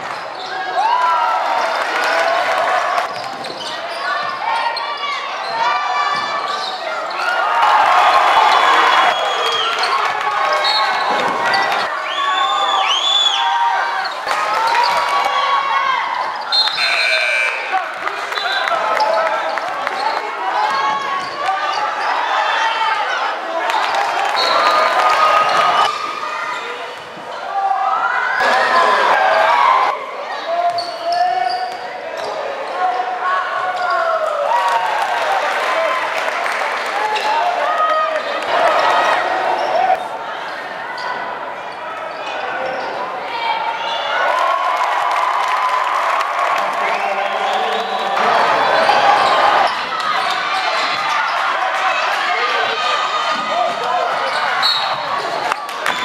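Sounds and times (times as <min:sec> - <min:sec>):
sneakers squeaking: 0:00.0 - 0:00.8, 0:03.0 - 0:22.8, 0:29.2 - 0:32.8, 0:39.1 - 0:44.2, 0:47.9 - 0:51.7, 0:52.6 - 0:56.0
crowd voices: 0:00.0 - 0:56.0.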